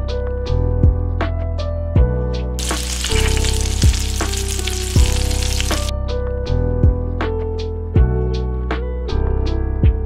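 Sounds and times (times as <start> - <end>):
background music with soft beat: 0.0 - 10.0
food sizzling in a hot pan: 2.6 - 5.9.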